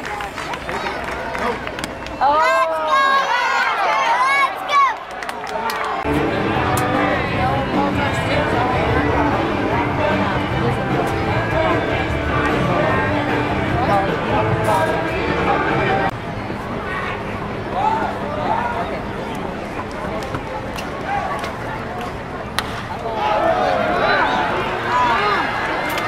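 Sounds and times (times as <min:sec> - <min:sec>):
crowd chatter: 0:00.0 - 0:26.0
music playing: 0:06.0 - 0:16.1.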